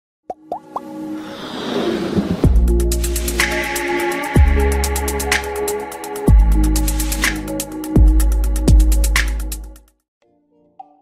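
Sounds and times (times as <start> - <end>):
quick rising pops: 0.6 - 2.7
electronic music: 2.4 - 9.8.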